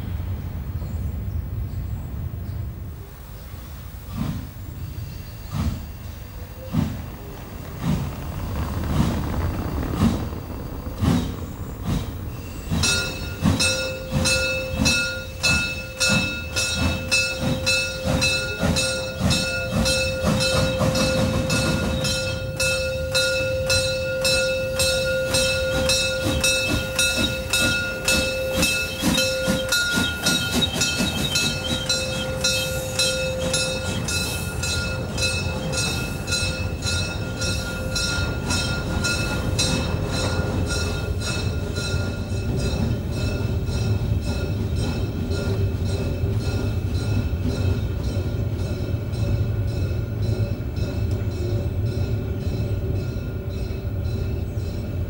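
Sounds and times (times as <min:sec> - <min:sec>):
steam locomotive chuffing: 0:03.0 - 0:55.0.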